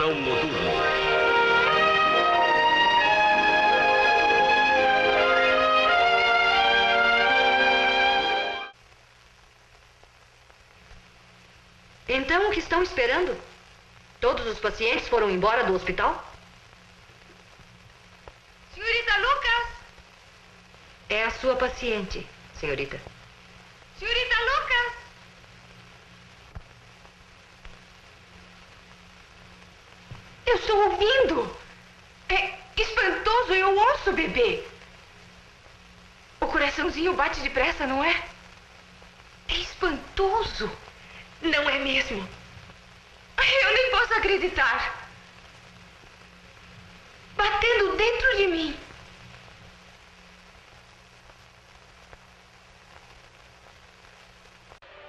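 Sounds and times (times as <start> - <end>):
film soundtrack hiss and hum: 0.0 - 55.0
faint clicks: 17.2 - 18.5, 26.5 - 30.3.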